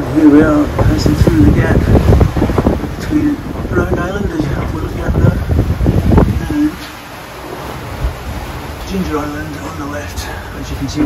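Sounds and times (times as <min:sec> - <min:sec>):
sea washing around boat: 0:00.0 - 0:11.0
wind buffeting microphone: 0:00.0 - 0:11.0.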